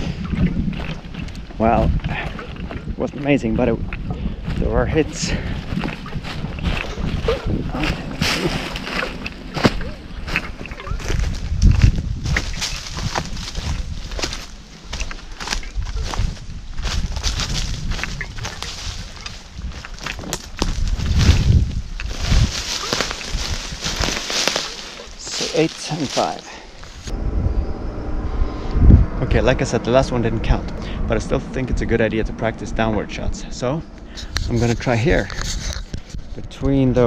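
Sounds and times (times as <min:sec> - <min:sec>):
wind thumps on microphone: 0:00.0 - 0:25.2, 0:26.8 - 0:37.0
footsteps crunching dry leaves: 0:00.7 - 0:27.1.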